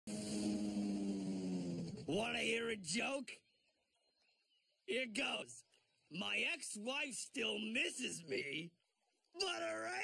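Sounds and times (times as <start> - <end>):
cartoon outboard motor droning: 0.1 - 2.2.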